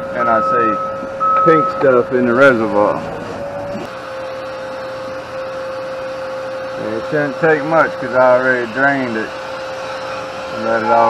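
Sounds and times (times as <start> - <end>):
small motor or fan whining: 0.0 - 11.0.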